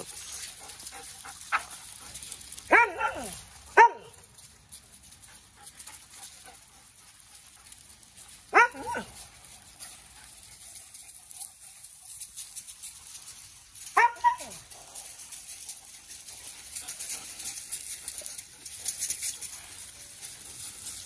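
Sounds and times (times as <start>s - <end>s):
dog barking: 2.7s - 4.2s, 8.5s - 9.1s, 14.0s - 14.6s.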